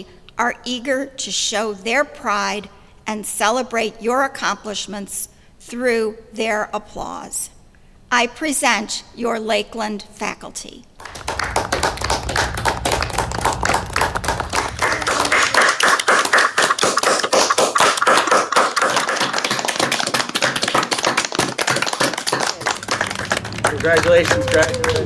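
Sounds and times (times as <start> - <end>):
low hum: 11.0 - 17.8, 22.6 - 25.0
many people clapping: 11.0 - 25.0.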